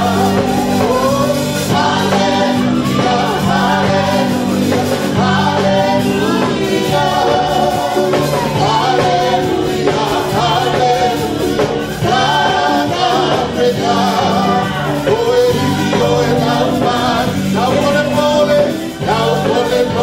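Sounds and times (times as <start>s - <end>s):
gospel singing into microphones: 0.0s - 20.0s.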